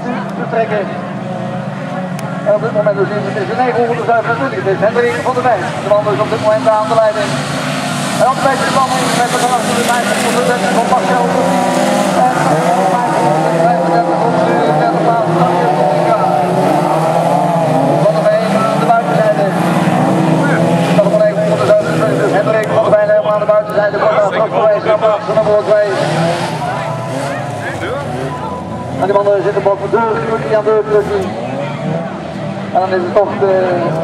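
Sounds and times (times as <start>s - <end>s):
racing car engines revving: 0.0s - 34.0s.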